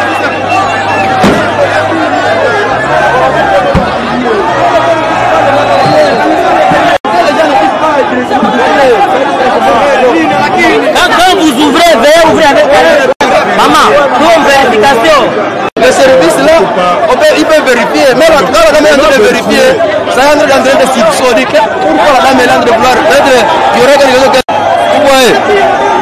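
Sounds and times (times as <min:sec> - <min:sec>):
crowd chattering loudly: 0:00.0 - 0:26.0.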